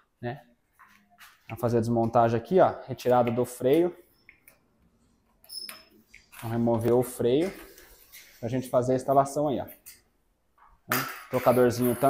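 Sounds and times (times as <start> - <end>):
metal tool clinking and rattling: 10.9 - 12.0.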